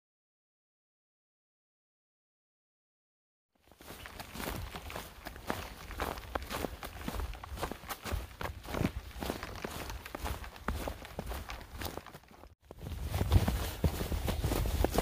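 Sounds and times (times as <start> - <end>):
boots scuffing on a trail: 3.6 - 15.0.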